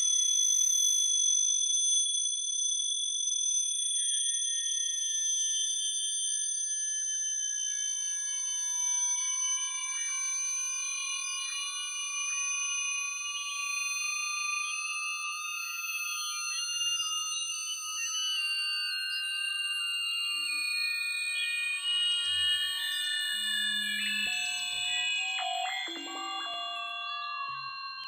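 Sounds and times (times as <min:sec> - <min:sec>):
layered high sine tones: 0:08.2 - 0:28.0.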